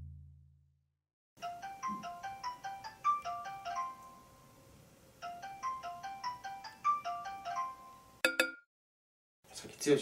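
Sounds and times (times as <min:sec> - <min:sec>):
phone ringtone melody: 0:01.4 - 0:04.5, 0:05.2 - 0:08.5.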